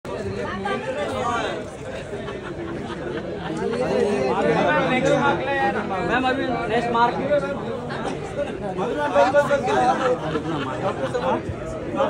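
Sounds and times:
babble of voices: 0:00.1 - 0:12.0.

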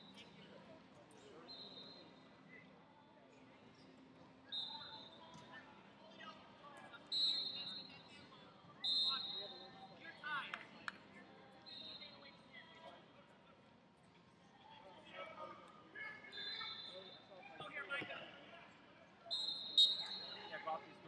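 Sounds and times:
murmur of voices: 0:00.0 - 0:21.0
referee whistle blasts: 0:08.8 - 0:09.4, 0:19.3 - 0:20.5.

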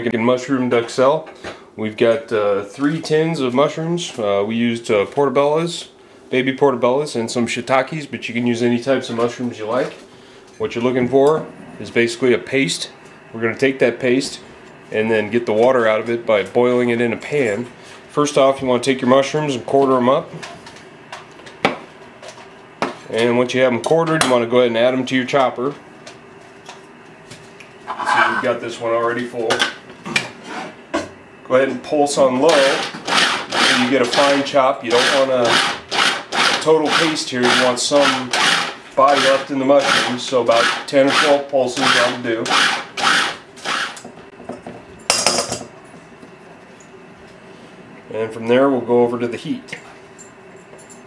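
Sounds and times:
kitchenware clatter: 0:27.9 - 0:28.5, 0:44.5 - 0:45.8
food chopper pulsing: 0:32.6 - 0:34.4, 0:35.0 - 0:44.0.

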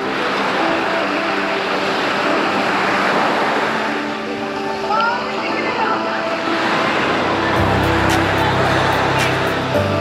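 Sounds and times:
quiet background music: 0:00.0 - 0:10.0
small waves washing on shore: 0:00.0 - 0:10.0.

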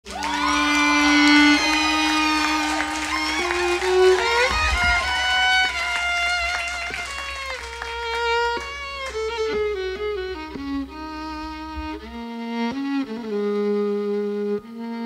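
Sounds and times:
violin playing slow notes: 0:00.0 - 0:15.0.

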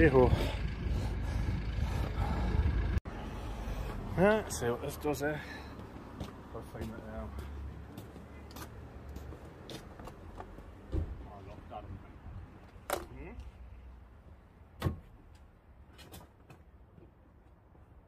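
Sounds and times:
low rumble: 0:00.0 - 0:04.1.

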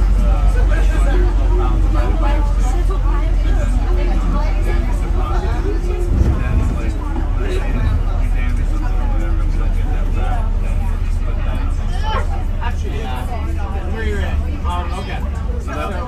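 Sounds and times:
indistinct voices talking: 0:00.0 - 0:16.0
vehicle engine and tyres rumbling: 0:00.0 - 0:16.0.

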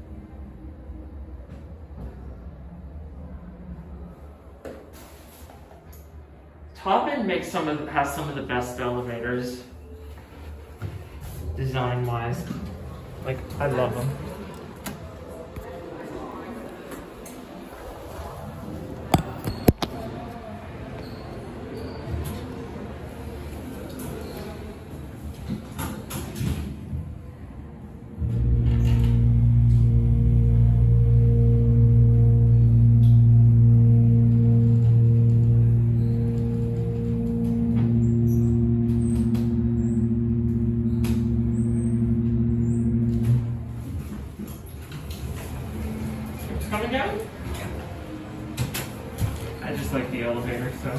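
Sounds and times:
elevator machinery humming: 0:28.0 - 0:50.9
mall background: 0:28.2 - 0:44.8.

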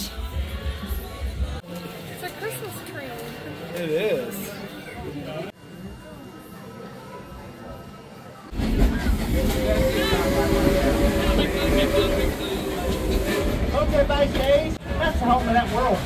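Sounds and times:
train rumble: 0:08.5 - 0:16.0.

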